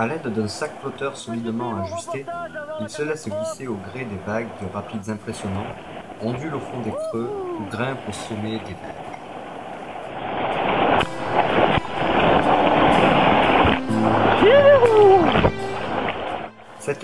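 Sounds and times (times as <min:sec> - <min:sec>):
river rapid rushing: 0:00.0 - 0:17.0
person whooping: 0:01.8 - 0:03.4, 0:06.9 - 0:07.8, 0:14.4 - 0:15.3.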